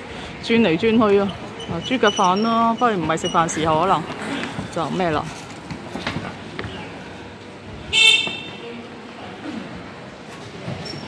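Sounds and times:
street noise: 0:00.0 - 0:11.0
scooter horn toot: 0:07.9 - 0:08.7.

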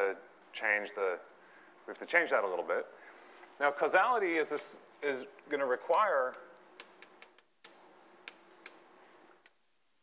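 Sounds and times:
chalk clicking on blackboard: 0:05.4 - 0:09.6.

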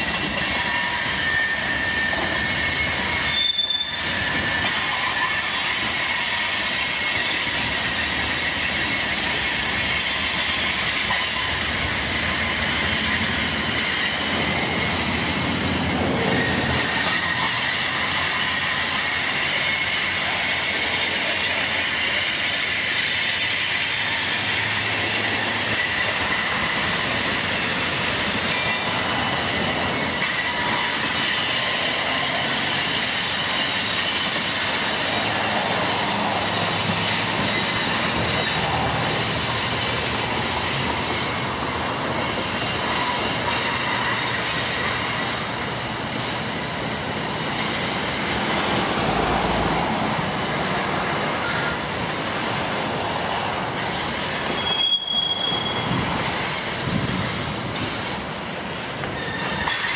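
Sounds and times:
train clickety-clack: 0:00.0 - 0:59.9
train wheels squealing on rails: 0:00.0 - 0:59.9.

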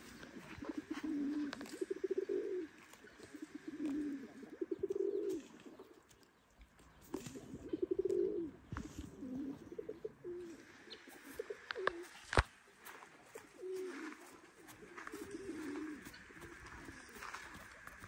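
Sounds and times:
pigeons cooing: 0:00.0 - 0:12.4, 0:13.3 - 0:18.0.

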